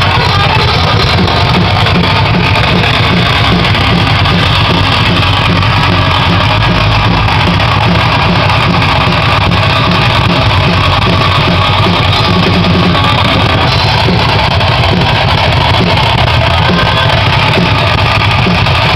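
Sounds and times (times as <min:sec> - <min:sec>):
live punk band playing: 0:00.0 - 0:18.9.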